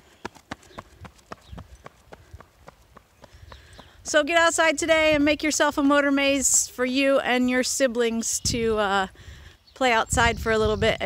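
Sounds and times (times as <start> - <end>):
child running footsteps on asphalt: 0.0 - 4.0.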